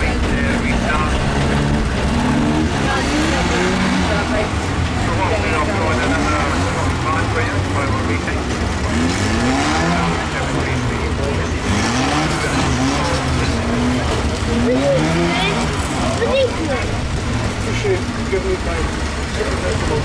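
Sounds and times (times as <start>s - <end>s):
car engines rumbling: 0.0s - 20.0s
people talking: 0.0s - 20.0s.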